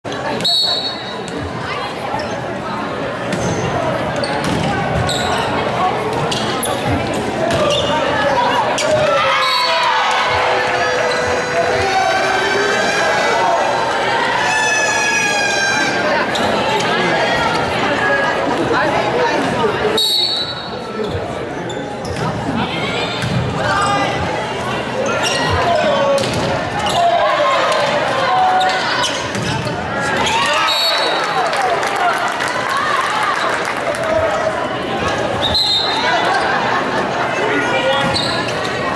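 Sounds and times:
crowd chatter in large hall: 0:00.0 - 0:38.9
voices calling out echoing: 0:00.0 - 0:38.9
sneakers squeaking on floor: 0:00.2 - 0:02.6, 0:03.2 - 0:09.8, 0:20.0 - 0:27.1, 0:28.6 - 0:31.2, 0:35.3 - 0:36.6, 0:37.8 - 0:38.9.

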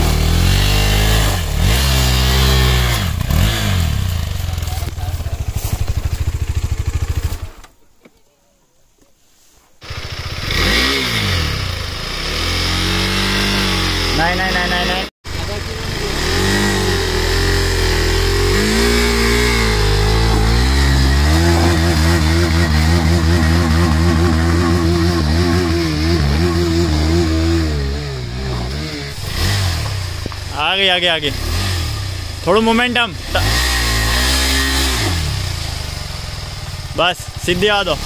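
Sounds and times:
motorcycle engine revving: 0:00.0 - 0:07.7, 0:09.8 - 0:38.0.

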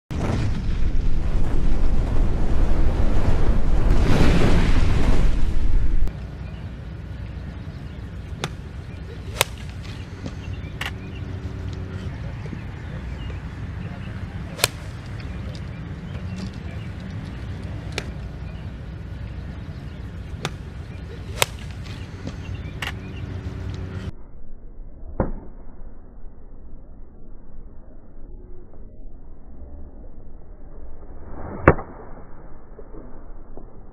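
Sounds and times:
low background rumble: 0:00.1 - 0:31.2
golf club striking ball: 0:09.3 - 0:11.1, 0:14.5 - 0:18.3, 0:21.3 - 0:23.0.

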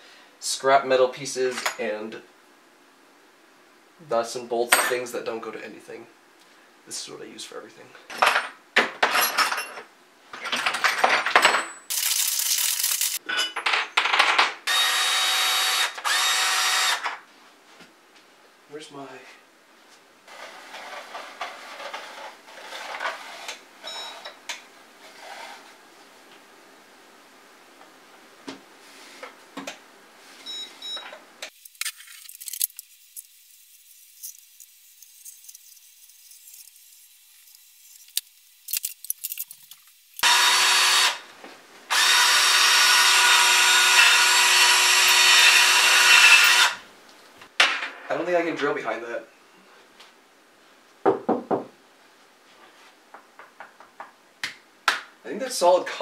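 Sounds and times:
power drill boring into wall: 0:14.7 - 0:17.2, 0:40.2 - 0:41.2, 0:41.9 - 0:46.8
metal hardware rustling in case: 0:34.2 - 0:40.0.

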